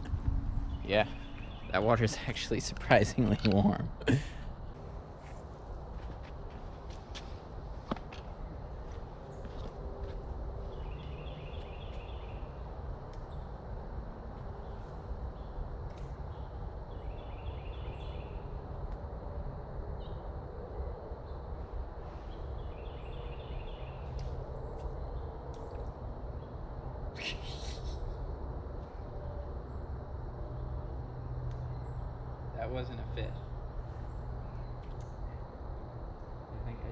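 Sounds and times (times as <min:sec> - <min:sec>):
low outdoor rumble: 0:00.0 - 0:36.9
bird trilled call: 0:27.2 - 0:28.0.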